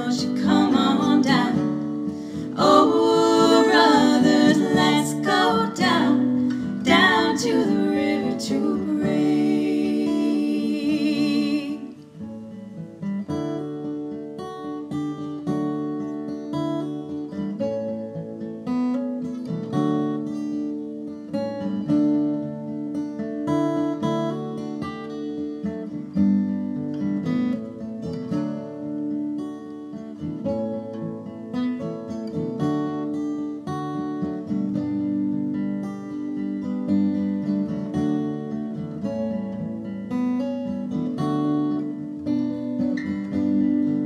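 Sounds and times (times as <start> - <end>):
acoustic guitar music: 0.0 - 44.0.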